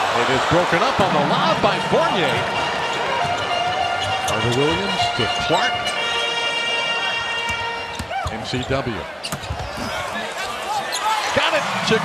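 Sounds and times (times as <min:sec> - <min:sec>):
arena crowd: 0:00.0 - 0:12.0
sneaker squeaks: 0:07.5 - 0:11.2.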